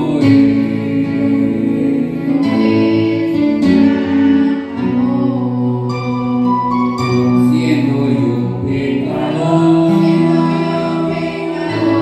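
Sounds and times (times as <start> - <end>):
electronic keyboard accompaniment: 0.0 - 12.0
people singing through loudspeakers: 0.0 - 12.0.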